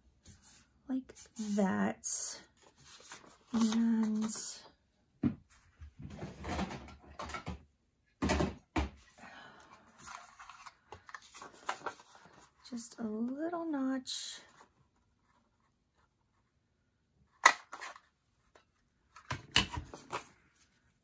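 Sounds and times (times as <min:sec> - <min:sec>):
paper rustling: 0:02.6 - 0:04.6, 0:10.0 - 0:12.6, 0:17.7 - 0:21.0.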